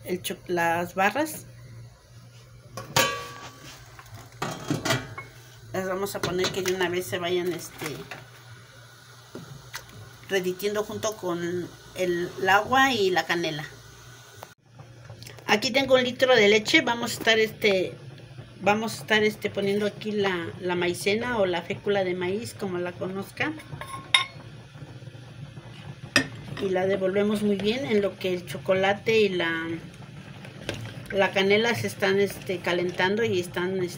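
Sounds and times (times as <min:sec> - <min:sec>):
faint steady hiss: 0:00.0 - 0:17.9.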